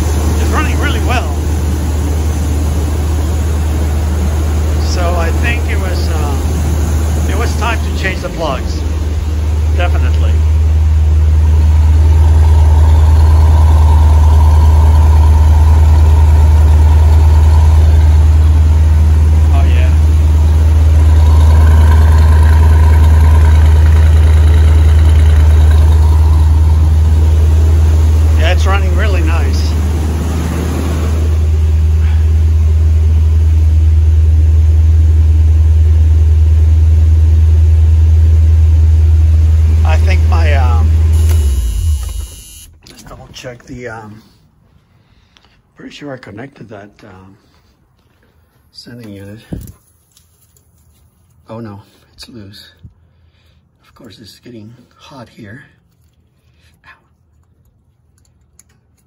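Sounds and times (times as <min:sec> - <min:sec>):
car engine idling: 0:00.0 - 0:43.8.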